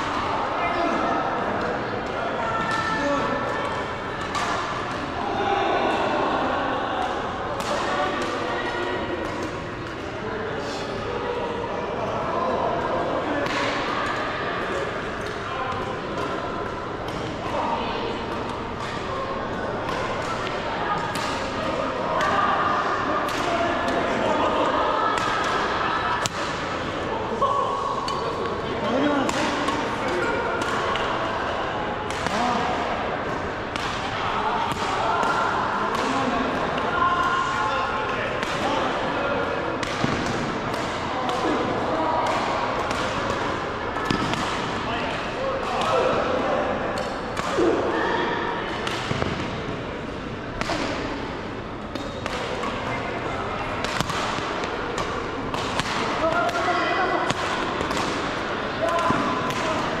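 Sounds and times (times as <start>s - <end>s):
chatter of voices: 0.0s - 60.0s
rackets hitting shuttlecock: 3.6s - 5.1s, 39.6s - 47.8s, 48.7s - 49.7s, 51.8s - 53.0s, 53.7s - 60.0s.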